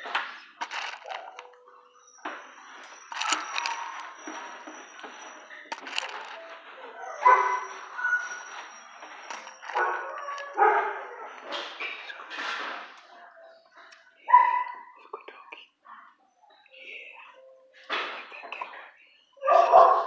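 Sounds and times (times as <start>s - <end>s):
dogs barking: 0.6s - 13.5s, 14.1s - 15.0s, 19.4s - 20.0s.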